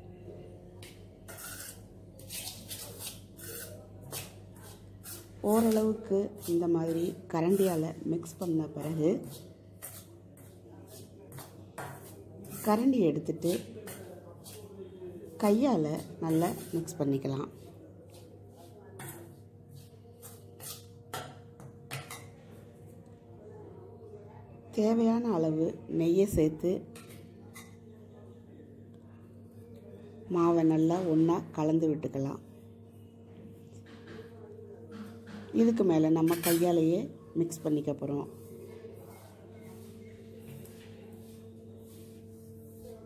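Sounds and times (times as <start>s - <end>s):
metal spoon scraping a steel bowl: 1.3s - 3.8s, 4.6s - 10.5s, 11.3s - 14.6s, 36.2s - 36.8s
hand swishing powder in bowl: 40.7s - 43.0s.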